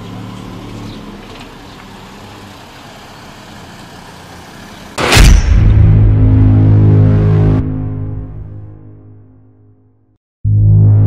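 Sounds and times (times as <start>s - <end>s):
outdoor street noise: 0.0s - 10.1s
loud whoosh: 5.0s - 8.9s
low droning music: 5.0s - 11.0s.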